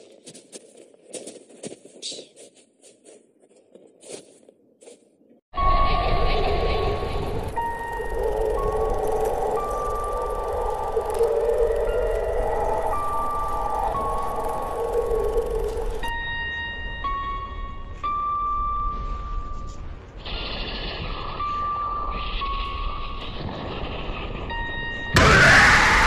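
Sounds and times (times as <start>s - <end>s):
horror film soundtrack music: 5.6s - 26.0s.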